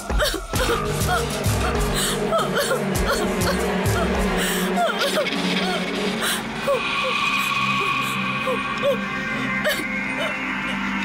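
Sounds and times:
eerie high drone tones: 0.6 - 11.0.

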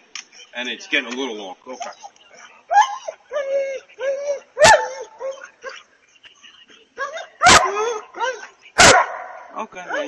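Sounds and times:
dog barking: 4.6 - 5.1, 7.4 - 8.0, 8.8 - 10.0.

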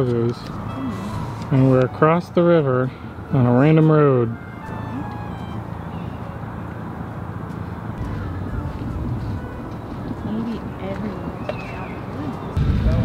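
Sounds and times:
street traffic engine hum: 0.0 - 13.0.

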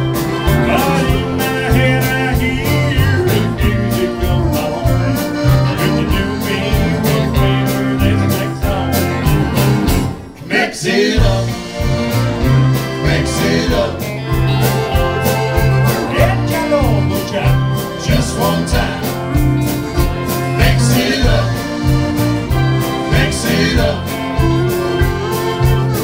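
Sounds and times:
live country band playing: 0.0 - 26.0.

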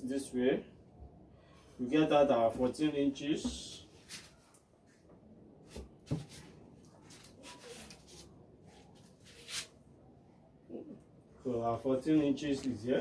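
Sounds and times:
cloth rustling: 5.7 - 9.7.

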